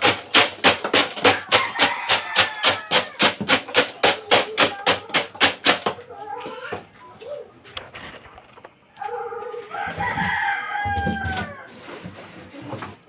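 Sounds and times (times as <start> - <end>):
rooster crowing: 1.3 - 3.2, 9.6 - 11.9.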